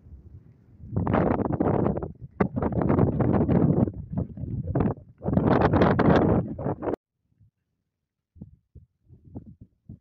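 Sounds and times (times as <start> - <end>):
wind buffeting microphone: 0.0 - 7.5, 8.3 - 10.0.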